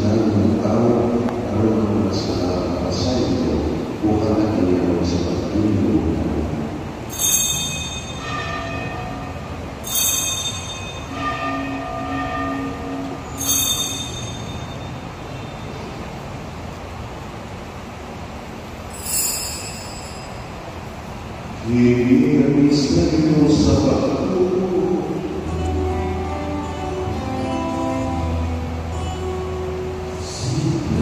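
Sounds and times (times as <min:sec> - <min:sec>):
small altar bell ringing: 0:07.1 - 0:15.9, 0:18.9 - 0:20.8.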